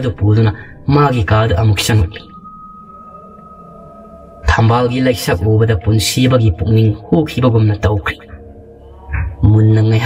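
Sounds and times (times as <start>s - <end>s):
high sustained drone tone: 0.0s - 10.0s.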